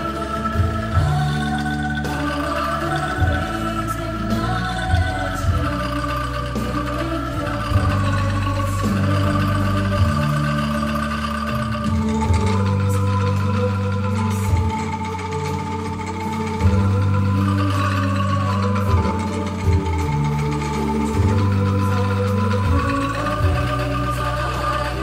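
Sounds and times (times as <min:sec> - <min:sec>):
angklung ensemble playing: 0:00.0 - 0:25.0.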